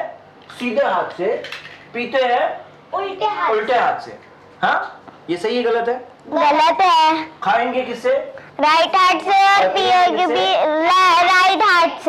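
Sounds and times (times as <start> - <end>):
person speaking: 6.3 - 11.0.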